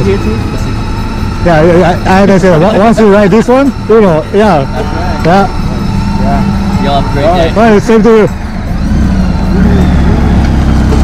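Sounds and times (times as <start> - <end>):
engine idling: 0.0 - 11.0
men talking: 0.0 - 11.0.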